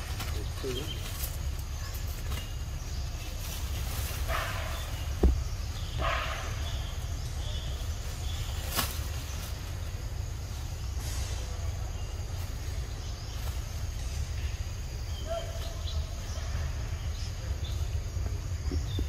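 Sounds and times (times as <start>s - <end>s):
leaves and twigs rustling: 0.0s - 19.0s.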